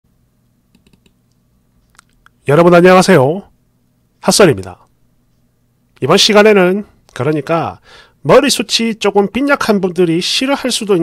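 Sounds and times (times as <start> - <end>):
faint low hum: 0.1 - 11.0
computer keyboard clicks: 0.7 - 2.4.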